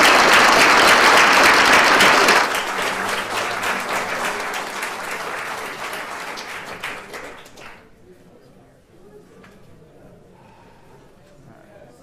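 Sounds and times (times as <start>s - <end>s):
audience applauding: 0.0s - 7.8s.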